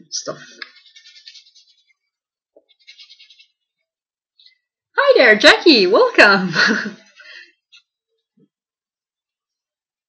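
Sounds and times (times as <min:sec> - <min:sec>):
stylus scratching on tablet: 0:00.4 - 0:04.6.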